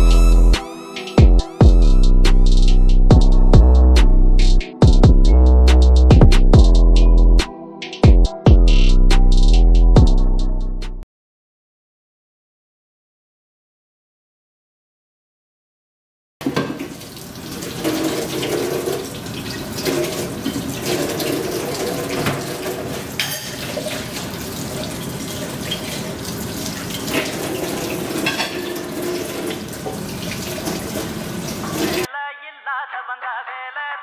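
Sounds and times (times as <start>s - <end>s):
tap running into a steel sink: 16.4s - 17.0s
crockery clinking: 22.2s - 23.8s, 28.2s - 29.3s.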